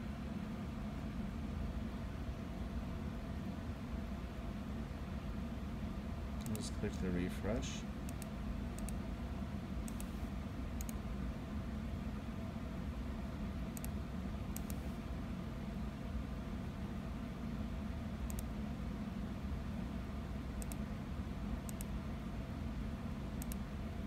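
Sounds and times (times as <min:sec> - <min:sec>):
computer fans humming: 0:00.0 - 0:24.0
mouse clicks: 0:08.1 - 0:09.0, 0:09.8 - 0:10.2, 0:10.8 - 0:11.0, 0:13.8 - 0:14.0, 0:14.6 - 0:14.8, 0:18.3 - 0:18.5, 0:20.6 - 0:20.8, 0:21.6 - 0:21.9, 0:23.4 - 0:23.6.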